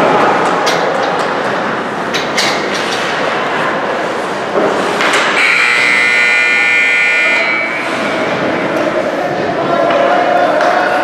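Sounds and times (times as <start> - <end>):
ice rink noise: 0.0 - 11.0
scoreboard buzzer blast: 5.4 - 7.8.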